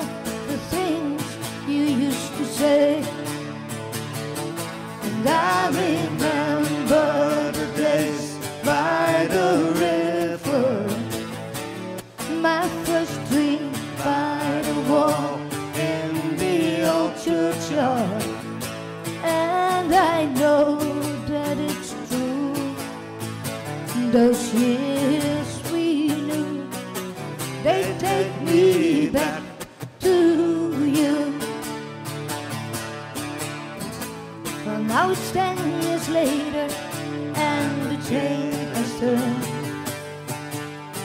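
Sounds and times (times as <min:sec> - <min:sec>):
woman singing into a microphone: 0:00.0 - 0:03.3, 0:05.0 - 0:08.4, 0:12.2 - 0:18.3, 0:19.2 - 0:23.0, 0:23.9 - 0:26.7, 0:27.6 - 0:31.5, 0:34.6 - 0:39.7
strummed acoustic guitar: 0:00.0 - 0:41.0.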